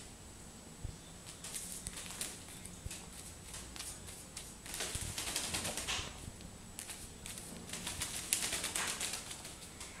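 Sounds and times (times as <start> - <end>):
bird flapping wings: 1.3 - 6.2, 6.8 - 9.7.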